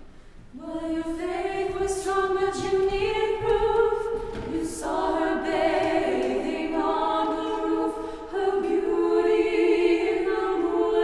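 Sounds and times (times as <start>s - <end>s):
choir singing unaccompanied: 0.5s - 11.0s.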